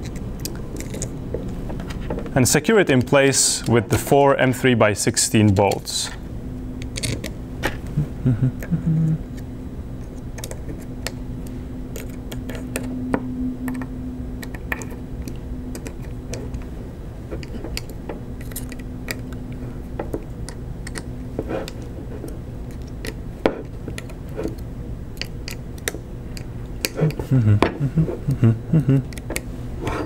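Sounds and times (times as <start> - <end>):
steady low hum: 0.0 - 30.0.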